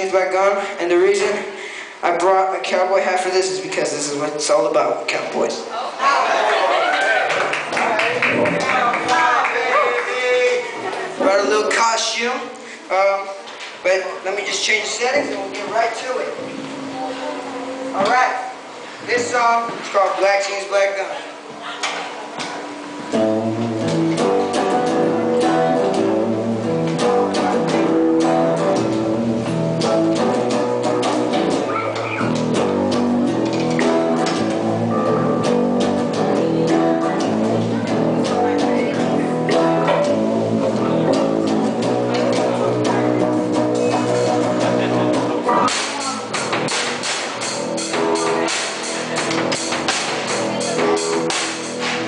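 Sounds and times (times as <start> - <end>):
bass guitar: 6.7 - 12.2, 14.6 - 20.7, 21.4 - 52.0
drum kit playing: 7.3 - 12.2, 22.1 - 52.0
electric guitar: 21.3 - 52.0.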